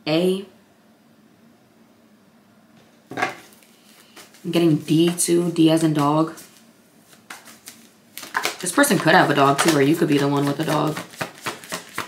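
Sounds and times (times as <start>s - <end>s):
object clattering on table: 3.1s - 3.5s.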